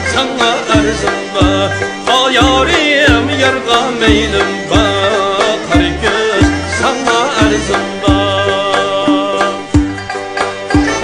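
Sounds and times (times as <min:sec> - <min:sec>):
folk band with lutes and drum: 0:00.0 - 0:11.0.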